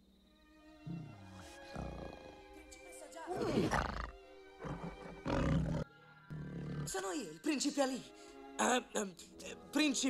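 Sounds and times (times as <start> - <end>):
orchestral film music: 0.1 - 10.0
tiger growling: 0.8 - 2.6, 3.3 - 7.1.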